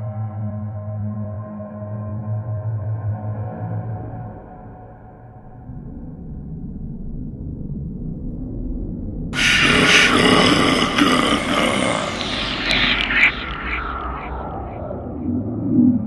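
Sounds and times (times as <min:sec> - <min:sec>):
low rumbling drone: 0:05.5 - 0:16.0
sudden loud noise burst: 0:09.4 - 0:15.4.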